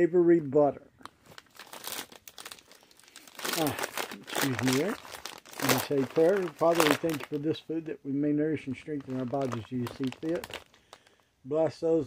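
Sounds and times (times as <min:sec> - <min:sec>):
plastic snack bag crinkling: 0:01.1 - 0:07.8, 0:08.7 - 0:11.2.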